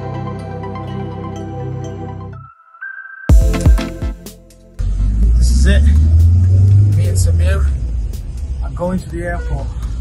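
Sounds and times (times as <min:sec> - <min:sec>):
bus engine droning: 0:04.8 - 0:10.0.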